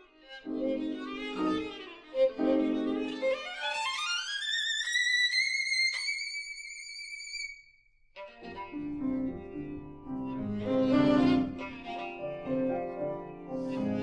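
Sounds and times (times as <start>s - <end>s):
low bowed string notes: 8.3s - 14.0s.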